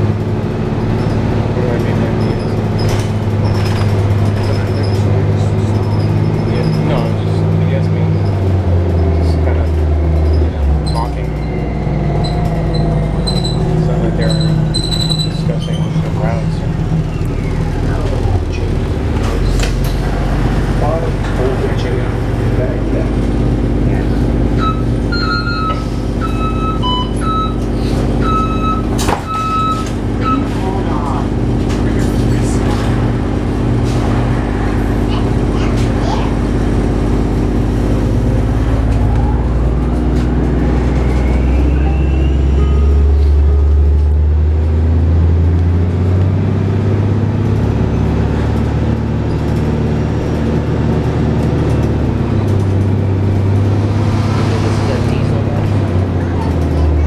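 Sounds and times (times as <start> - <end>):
bus engine drone: 0.0 - 57.0
short beeps: 24.6 - 27.6, 28.2 - 30.6, 41.1 - 43.8
sharp clunk: 29.0 - 29.4.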